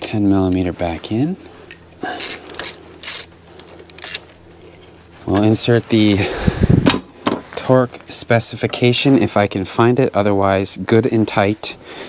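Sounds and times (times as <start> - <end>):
socket ratchet clicking: 2.2 - 4.2.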